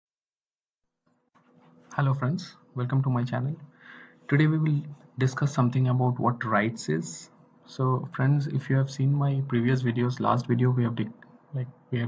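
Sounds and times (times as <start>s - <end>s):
low steady hum: 1.6s - 12.0s
faint hiss: 1.9s - 12.0s
man speaking: 1.9s - 12.0s.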